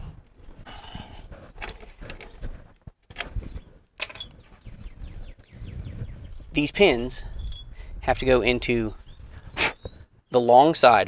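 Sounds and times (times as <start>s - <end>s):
metallic clicks and clinks: 1.6s - 2.4s, 3.0s - 4.4s.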